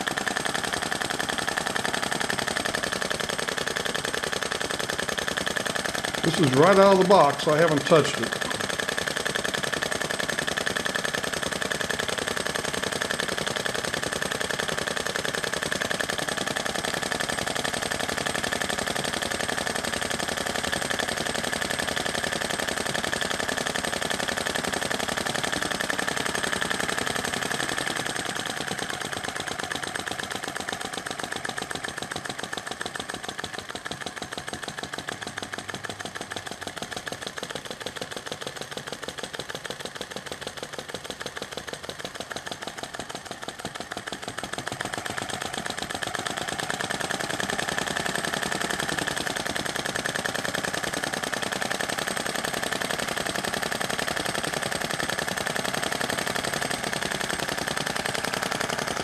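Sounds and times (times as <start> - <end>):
small engine clattering rapidly: 0.0 - 59.0.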